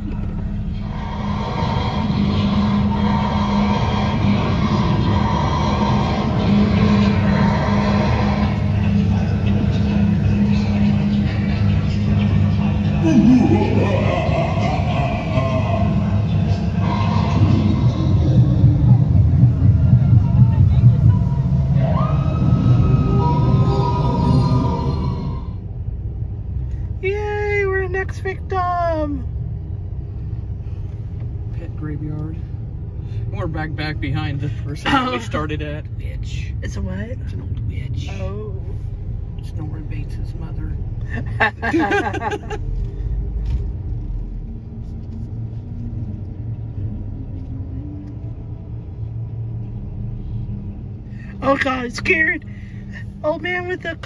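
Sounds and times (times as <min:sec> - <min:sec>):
car rumble from inside: 0:00.0 - 0:54.0
person's voice: 0:34.8 - 0:35.6.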